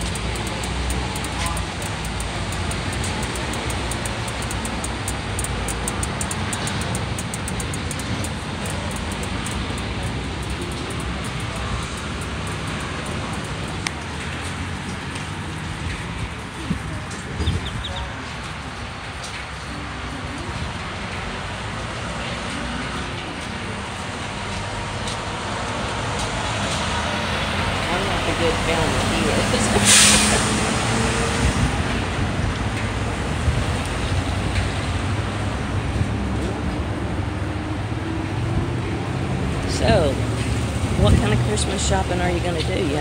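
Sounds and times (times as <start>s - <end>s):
road traffic passing: 0.0s - 43.0s.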